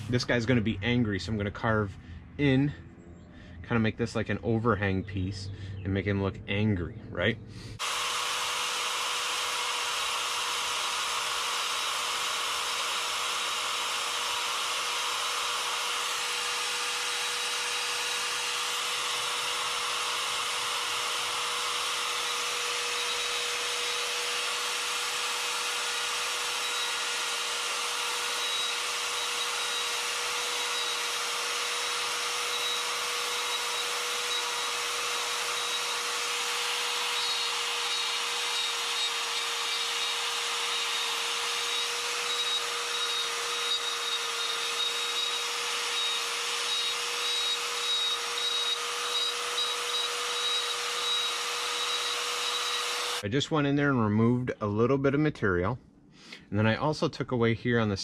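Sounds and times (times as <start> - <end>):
die grinder whining: 0.0 - 0.7, 7.6 - 53.2
burr grinding into wood: 7.8 - 53.2.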